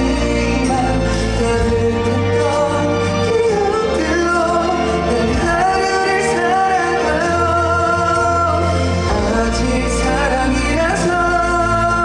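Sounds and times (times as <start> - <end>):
backing music: 0.0 - 12.0
man singing into microphone: 0.0 - 12.0.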